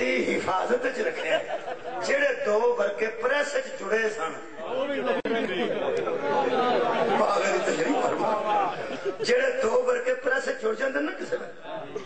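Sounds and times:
man talking into a microphone: 0.0 - 6.3, 7.0 - 12.0.

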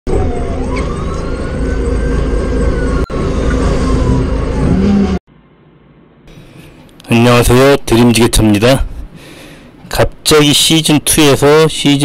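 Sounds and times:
rising and falling tone: 0.1 - 5.2.

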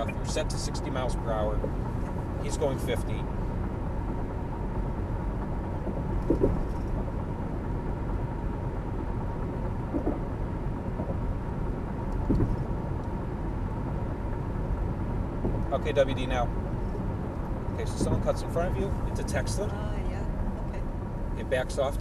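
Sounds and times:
car cabin road and engine rumble: 0.0 - 22.0.

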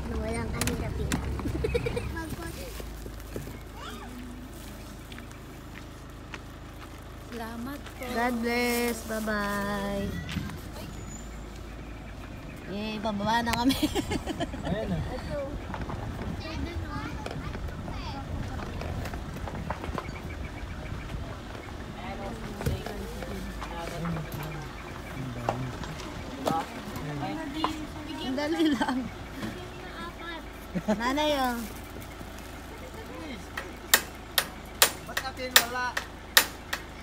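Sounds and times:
footsteps on dirt: 0.0 - 13.7, 14.4 - 35.4
low steady rumble: 0.0 - 37.0
low wind rumble: 8.8 - 23.6.

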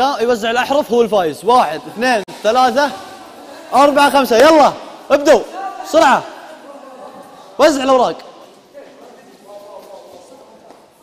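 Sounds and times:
faint voices: 1.8 - 11.0.

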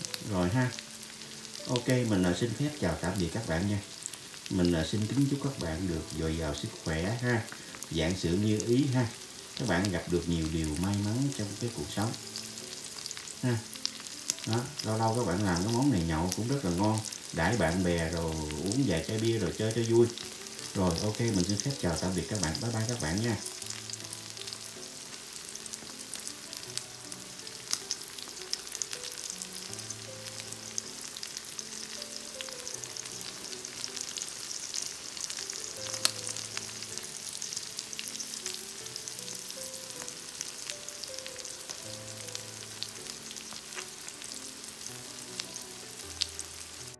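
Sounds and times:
quiet background music: 0.0 - 46.9
scallops sizzling and popping: 0.0 - 46.9.

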